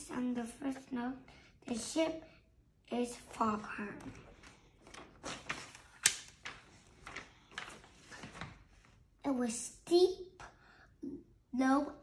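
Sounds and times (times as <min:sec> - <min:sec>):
paper pages rustling: 0:03.2 - 0:09.0.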